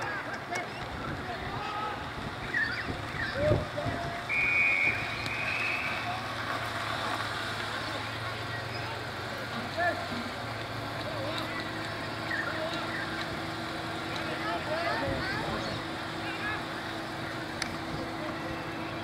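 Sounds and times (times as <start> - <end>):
people shouting: 0.0 - 6.4, 11.2 - 17.2
referee whistle blowing: 4.2 - 6.2.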